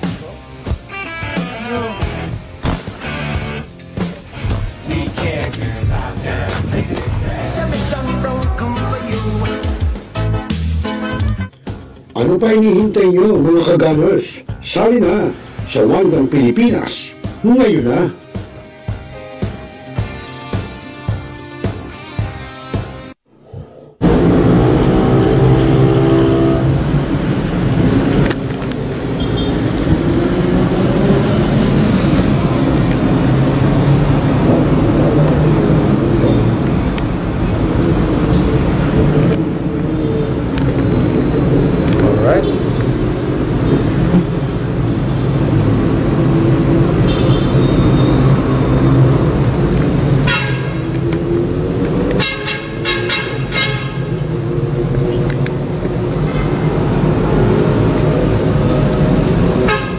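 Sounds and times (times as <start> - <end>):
steady traffic noise: 0.0 - 10.4, 11.2 - 22.0, 23.1 - 59.9
indistinct voices: 4.8 - 9.8
vehicle horn tooting: 29.2 - 29.6, 47.0 - 48.4, 50.2 - 50.9, 52.2 - 54.2, 59.6 - 59.9.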